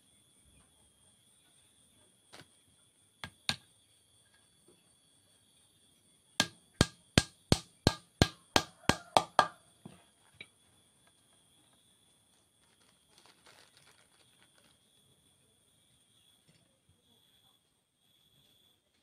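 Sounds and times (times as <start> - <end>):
hammer striking wooden strip: 6.4 - 9.6.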